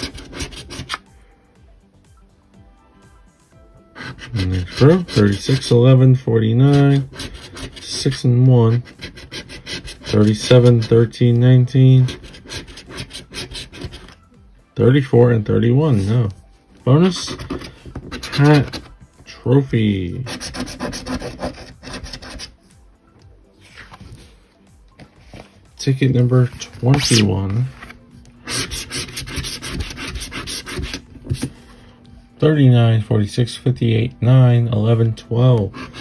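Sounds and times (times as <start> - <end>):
coin scratching lottery ticket: 0.0 - 1.0, 3.9 - 14.2, 17.0 - 18.9, 20.2 - 22.5, 26.8 - 31.5, 35.7 - 36.0.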